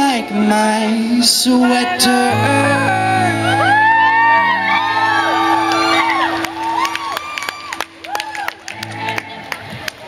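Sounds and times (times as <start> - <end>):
crowd screaming and cheering: 1.7 - 10.0.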